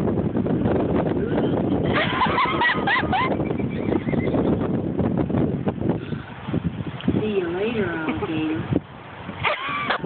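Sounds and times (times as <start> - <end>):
horse whinny: 3.7 - 4.5.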